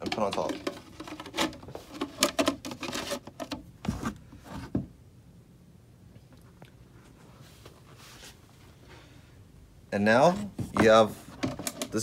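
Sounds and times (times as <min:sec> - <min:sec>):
hard plastic parts clicking: 0:00.0 - 0:03.6, 0:10.8 - 0:12.0.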